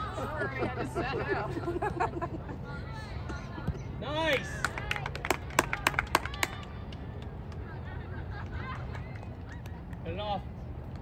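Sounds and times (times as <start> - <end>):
low crowd background: 0.0 - 11.0
spectators clapping: 4.3 - 7.6.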